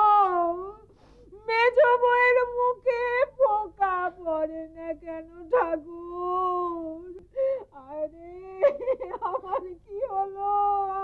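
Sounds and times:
elderly woman wailing and sobbing: 0.0s - 11.0s.

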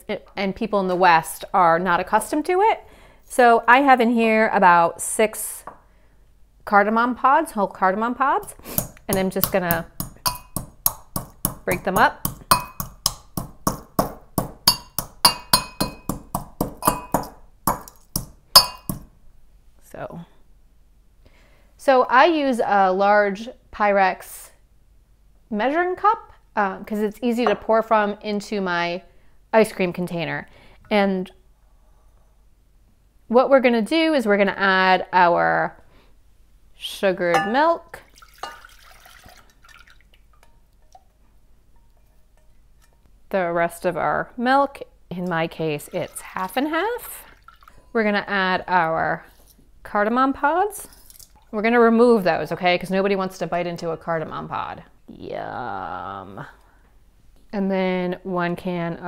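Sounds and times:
pestle striking metal mortar: 8.7s - 19.1s, 37.4s - 37.6s
thick liquid pouring and dripping: 38.0s - 41.1s, 47.2s - 47.9s, 50.9s - 51.6s
liquid splash: 38.1s - 40.2s.

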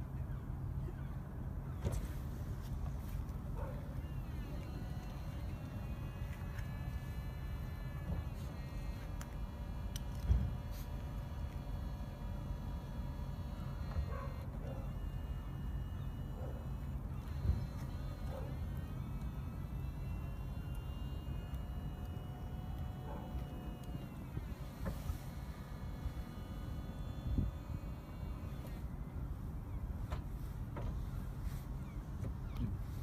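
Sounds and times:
pump whine: 0.0s - 33.0s.

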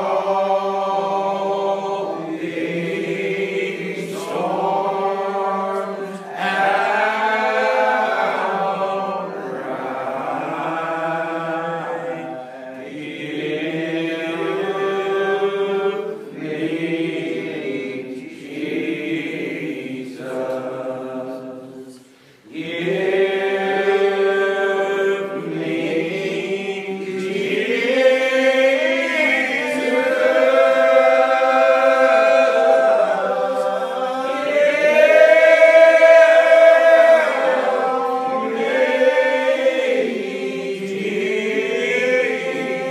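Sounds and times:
unaccompanied hymn singing: 0.0s - 42.9s.

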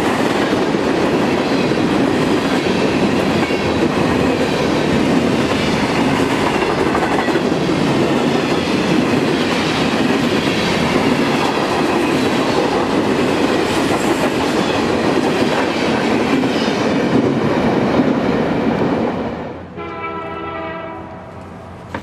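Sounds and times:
freight train wheels rumbling on rails: 0.0s - 22.0s.

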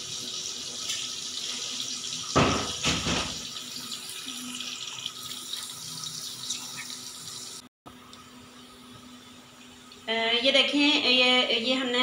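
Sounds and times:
onions sizzling in oil: 0.0s - 7.6s.

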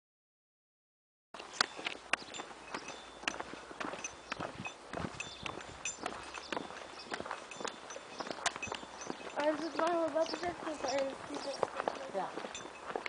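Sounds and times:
footsteps on asphalt: 1.4s - 13.0s
faint high clinks: 1.5s - 13.0s.

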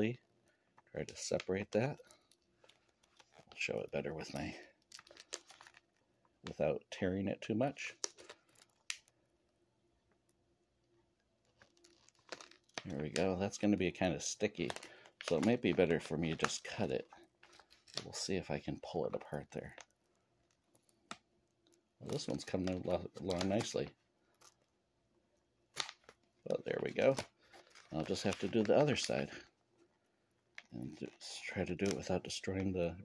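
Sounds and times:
soft plastic rustling: 0.0s - 9.3s, 10.1s - 33.0s
plastic wrapper crackle: 0.4s - 6.7s, 7.5s - 9.2s, 11.2s - 24.8s, 25.7s - 32.8s
plastic packet crinkling: 1.0s - 6.6s, 7.8s - 9.2s, 11.4s - 24.7s, 25.7s - 29.9s, 30.5s - 32.8s.

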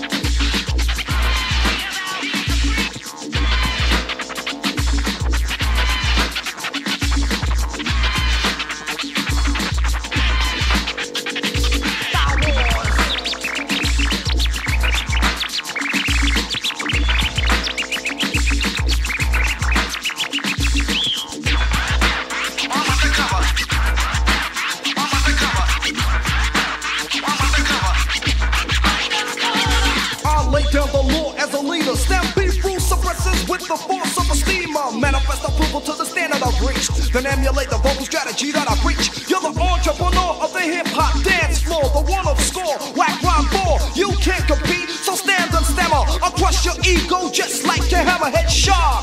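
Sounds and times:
deep bass drum beat: 0.0s - 1.9s, 2.5s - 4.2s, 4.8s - 6.4s, 7.0s - 8.6s, 9.2s - 11.0s, 11.6s - 20.0s, 20.6s - 24.6s, 25.2s - 26.6s, 27.4s - 33.6s, 36.5s - 40.4s, 41.0s - 44.8s, 45.5s - 49.0s
turntable scratching: 0.0s - 49.0s.

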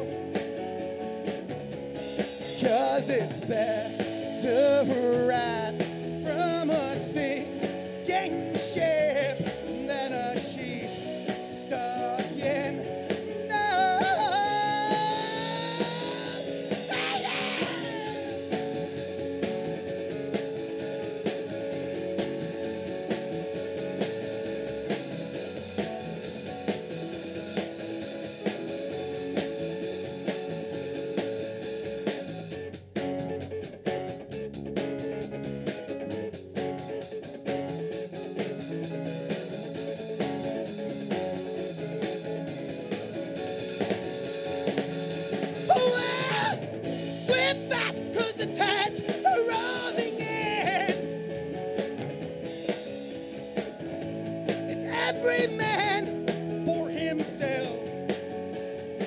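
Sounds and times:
rock band playing: 0.0s - 59.0s
steady drum beat: 0.0s - 59.0s.

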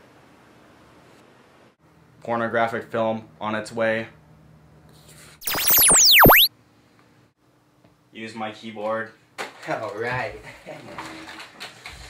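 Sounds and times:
synthesized tones sweeping in pitch: 5.4s - 6.5s.

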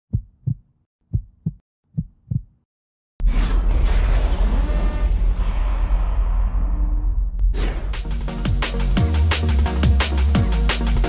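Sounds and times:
heartbeat thumps: 0.1s - 2.6s.

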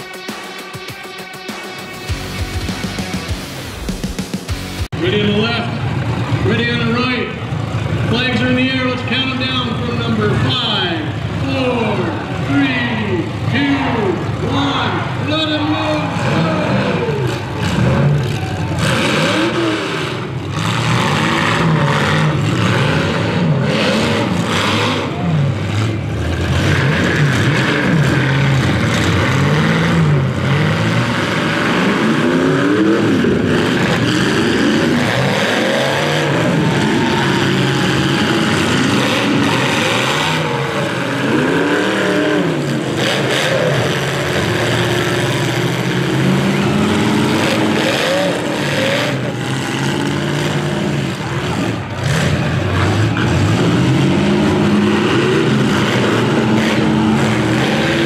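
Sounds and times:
vehicle engines revving hard: 0.0s - 58.0s
vehicles crashing into each other: 16.0s - 58.0s.

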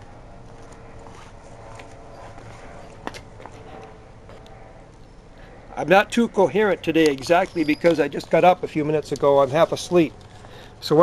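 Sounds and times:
faint outdoor background: 0.0s - 11.0s
footsteps on pavement: 0.4s - 4.4s.

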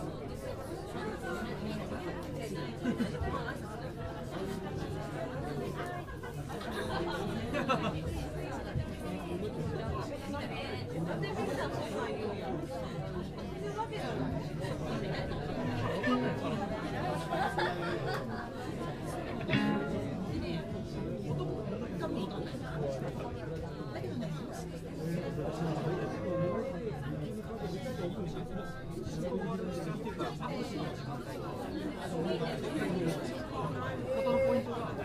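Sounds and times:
audience chatter: 0.0s - 35.0s.

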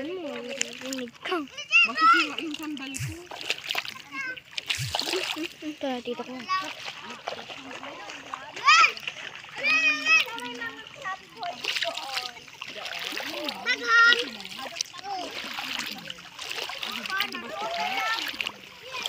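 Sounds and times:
bare feet splashing through water: 0.0s - 19.0s
high-pitched voices calling out: 0.6s - 5.8s.

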